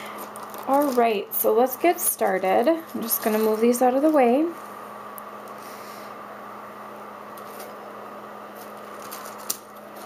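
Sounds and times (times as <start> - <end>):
electrical hum and hiss: 0.0 - 10.0
craft supplies rustling: 0.2 - 1.2, 2.3 - 4.3, 8.6 - 10.0.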